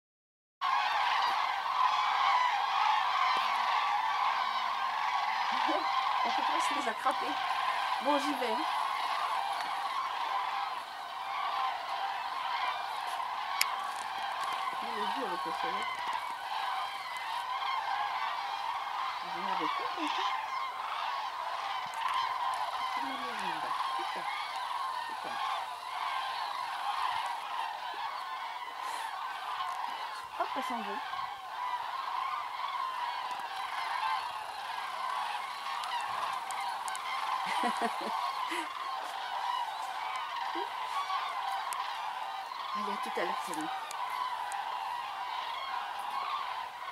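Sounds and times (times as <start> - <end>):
cranes trumpeting calls: 0.6 - 46.9.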